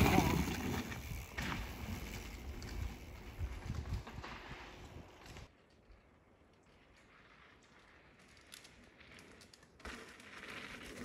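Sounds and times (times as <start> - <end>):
bike tyres rolling on dirt: 0.0 - 11.0
wind rumbling on microphone: 2.1 - 5.5.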